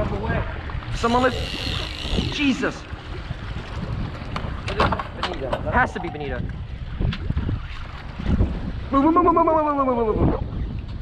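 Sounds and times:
water around boat: 0:00.0 - 0:11.0
wind on microphone: 0:00.0 - 0:11.0.

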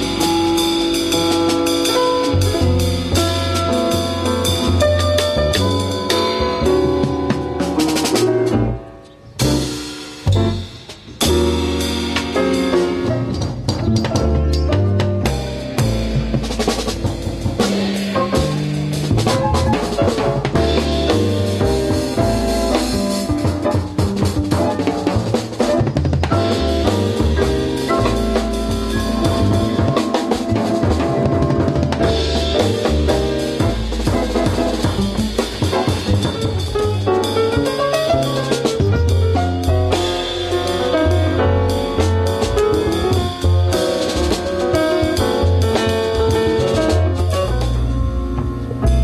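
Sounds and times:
drum strokes: 0:00.0 - 0:49.0
jazz combo playing: 0:00.0 - 0:49.0
upright double bass: 0:00.0 - 0:49.0.

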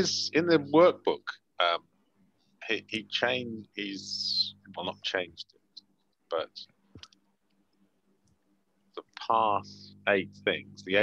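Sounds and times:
person speaking: 0:00.0 - 0:01.8, 0:02.6 - 0:07.1, 0:09.0 - 0:11.0.

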